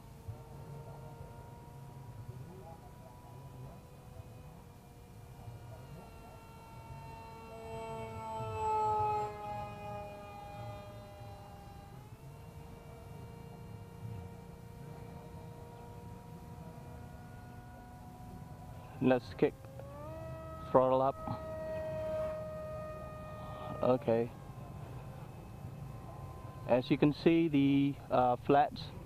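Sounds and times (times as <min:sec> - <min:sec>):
electric motor and propeller whining: 0:00.0 - 0:29.0.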